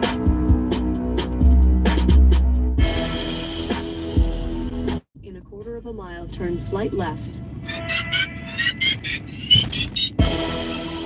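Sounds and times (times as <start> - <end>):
hip-hop music in a car: 0.0 - 5.6, 7.7 - 11.0
high-pitched rising chirps: 7.6 - 10.2.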